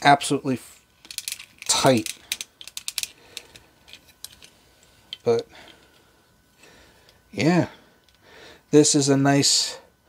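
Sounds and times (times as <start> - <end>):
plastic toy clicks: 1.0 - 4.5.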